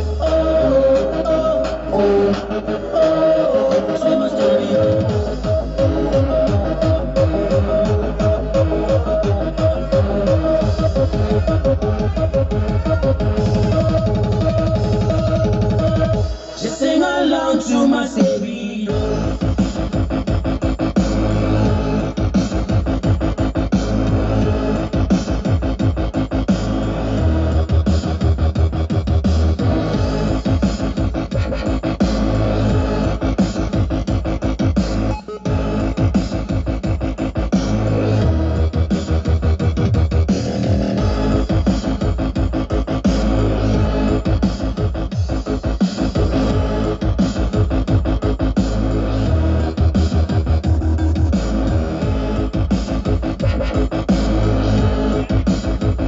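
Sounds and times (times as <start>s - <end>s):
loud electronic dance music: 0.0s - 56.0s.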